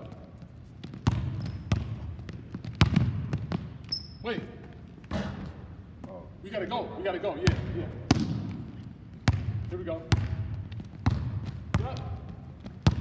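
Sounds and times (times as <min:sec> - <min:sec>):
sneakers squeaking on floor: 0:00.0 - 0:06.2, 0:07.5 - 0:13.0
basketball bouncing on hardwood: 0:00.8 - 0:04.0, 0:07.5 - 0:13.0.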